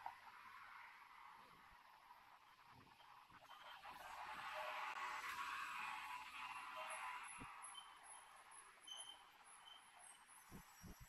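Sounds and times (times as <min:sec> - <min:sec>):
faint high chirps: 0:06.8 - 0:11.0.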